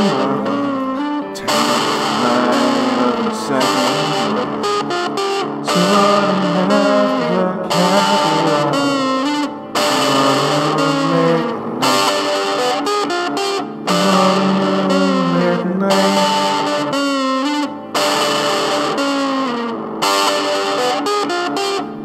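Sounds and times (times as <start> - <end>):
distorted electric guitar music: 0.0 - 22.0.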